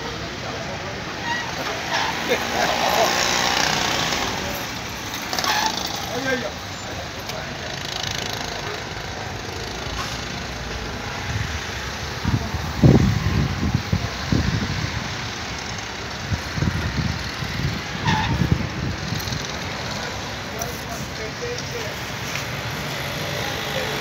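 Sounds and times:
street background noise: 0.0s - 24.0s.

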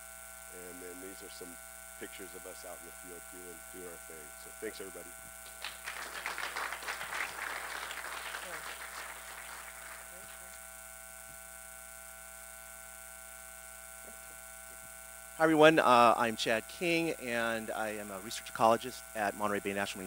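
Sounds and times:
steady electrical hum: 0.0s - 20.0s
audience applauding: 5.4s - 10.5s.

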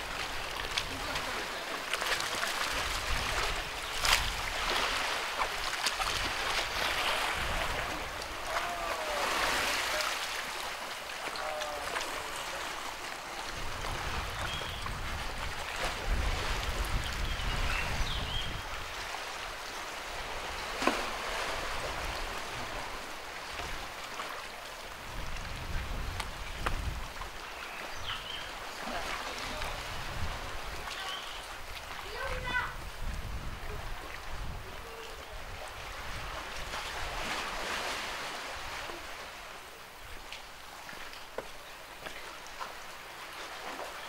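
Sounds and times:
waves washing on rocky shore: 0.0s - 27.4s, 28.4s - 39.6s
wind rumbling on microphone: 2.5s - 9.7s, 13.4s - 19.2s, 24.9s - 28.4s, 29.4s - 37.6s.

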